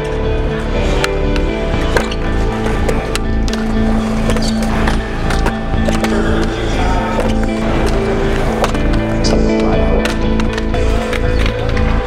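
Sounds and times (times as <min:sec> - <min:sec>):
background music: 0:00.0 - 0:12.0
skateboard wheels rolling: 0:00.0 - 0:12.0
skateboards clacking on concrete: 0:00.0 - 0:12.0.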